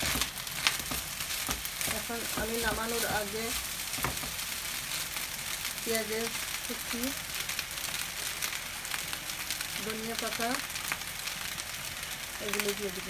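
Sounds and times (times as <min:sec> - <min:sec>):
rice sizzling in a frying pan: 0:00.0 - 0:13.0.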